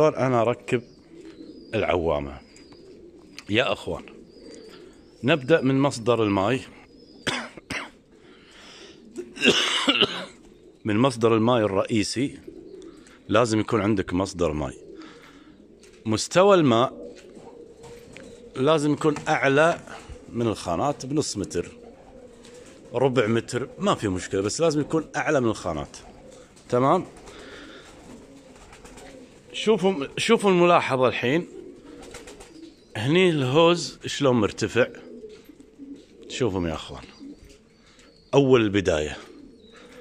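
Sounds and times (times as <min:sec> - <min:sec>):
faint pigeons cooing: 0:00.0 - 0:40.0
person coughing: 0:07.2 - 0:08.0, 0:09.3 - 0:10.4.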